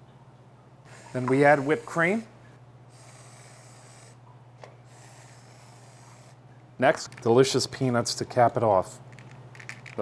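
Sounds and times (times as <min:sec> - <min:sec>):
steady low hum: 0:00.0 - 0:10.0
aerosol can hissing: 0:02.9 - 0:04.2, 0:04.9 - 0:06.4.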